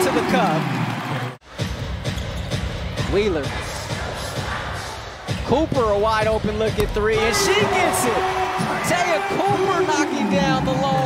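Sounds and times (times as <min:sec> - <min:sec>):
music from arena speakers: 0:00.1 - 0:11.0
play-by-play commentator voice: 0:05.5 - 0:11.0
crowd noise: 0:06.7 - 0:11.0.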